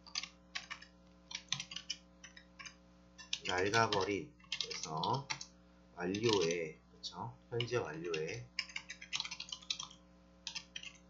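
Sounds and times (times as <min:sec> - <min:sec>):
computer keyboard typing: 0:00.0 - 0:06.6, 0:07.6 - 0:11.0.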